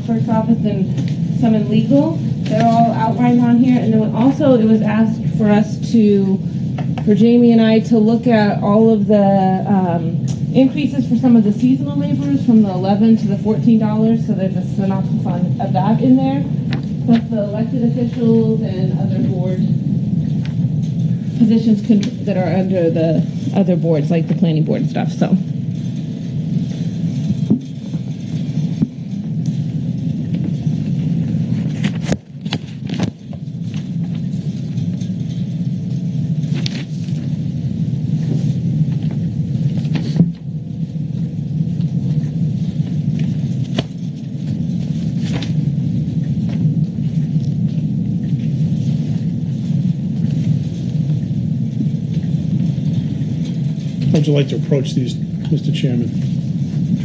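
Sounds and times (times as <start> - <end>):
low room hum: 0.0 - 57.0
clicks and knocks from papers: 31.6 - 35.4, 36.5 - 37.3, 42.8 - 45.6.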